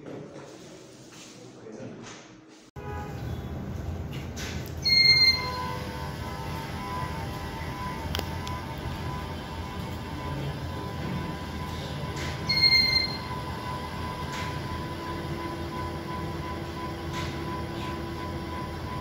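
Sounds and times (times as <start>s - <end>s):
ceiling fan whirring hum: 2.8s - 19.0s
short electronic beeps: 4.8s - 5.9s, 11.6s - 13.8s.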